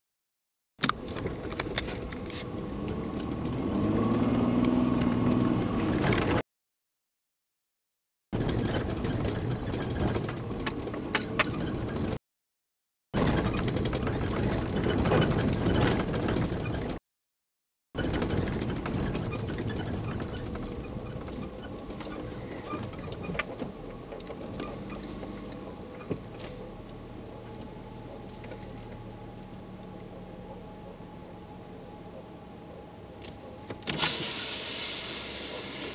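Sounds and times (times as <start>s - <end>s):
truck engine and road noise: 0.8s - 6.4s, 8.4s - 12.2s, 13.2s - 17.0s, 18.0s - 35.9s
rattles and ticks: 8.4s - 12.2s, 13.2s - 17.0s, 18.0s - 30.2s.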